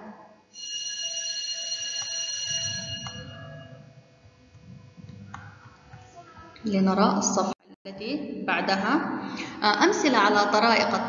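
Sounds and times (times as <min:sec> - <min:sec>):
high-pitched ringing tones: 0:00.5 - 0:05.0.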